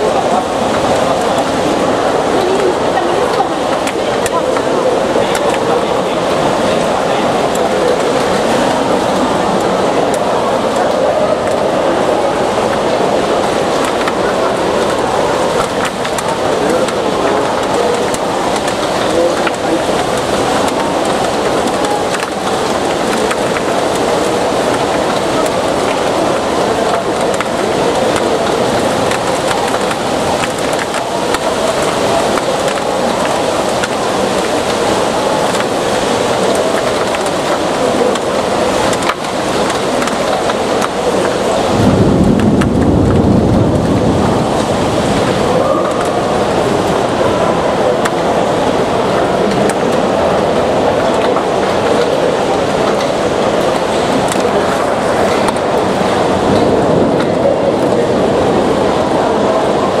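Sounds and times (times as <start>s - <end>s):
heavy rain: 0.0s - 60.0s.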